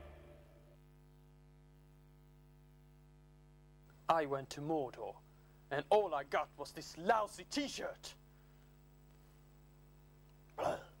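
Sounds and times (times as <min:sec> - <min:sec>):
low electrical hum: 0:00.0 - 0:11.0.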